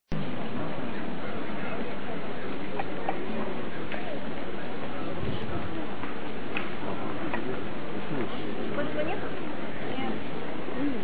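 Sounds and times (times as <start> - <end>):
street crowd noise: 0.1 - 11.0.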